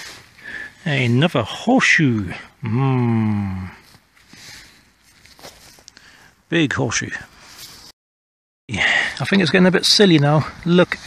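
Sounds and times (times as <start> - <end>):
faint rustling: 3.8 - 6.2.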